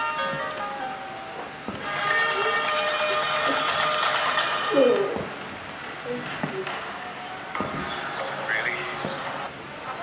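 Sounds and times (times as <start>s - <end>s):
noisy rush with steady tones: 0.0s - 10.0s.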